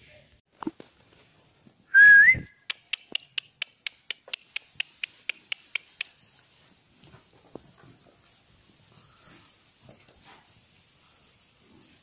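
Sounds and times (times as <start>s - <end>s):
sharp clicks: 2.6s - 6.2s.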